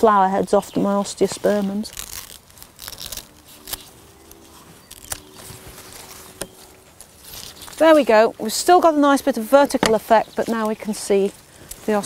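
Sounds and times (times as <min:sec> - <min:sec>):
faint steady hum: 0:00.0 - 0:12.0
garden scissors snipping: 0:01.4 - 0:08.2.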